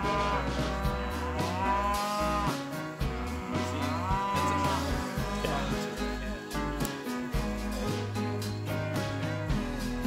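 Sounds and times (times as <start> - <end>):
cattle mooing: 0.0 - 6.4
background music: 0.0 - 10.0.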